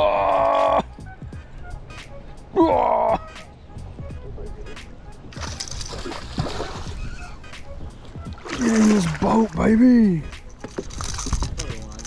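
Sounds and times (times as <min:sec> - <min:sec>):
fish splashing at water surface: 0:05.4 - 0:07.2.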